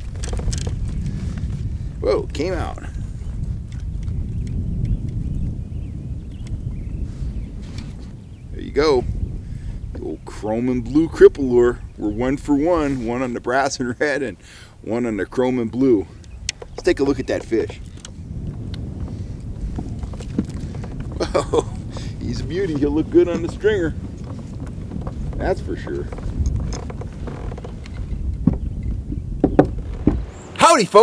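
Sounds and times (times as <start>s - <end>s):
wind buffeting microphone: 0.0s - 31.0s
faint clicks: 3.4s - 5.5s, 16.2s - 29.0s.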